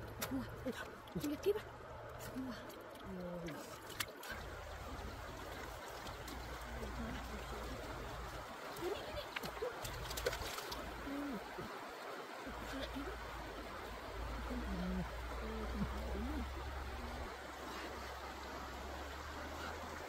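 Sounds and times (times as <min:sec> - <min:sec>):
stream water trickling: 0:00.0 - 0:20.0.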